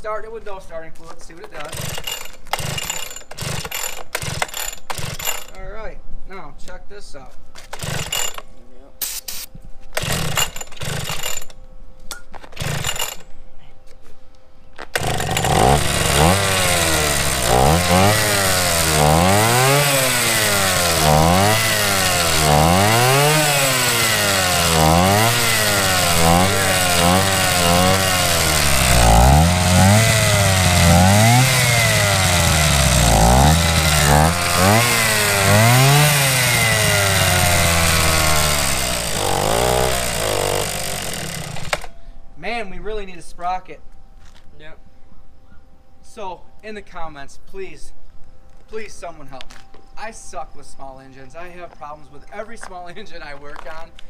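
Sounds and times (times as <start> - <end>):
scooter two-stroke engine revving: 15.0 - 41.9.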